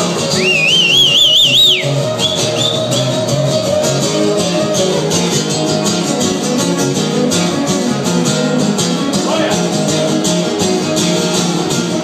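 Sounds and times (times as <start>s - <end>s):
live band with electric guitars: 0.0s - 12.0s
shrill warbling whistle: 0.3s - 3.2s.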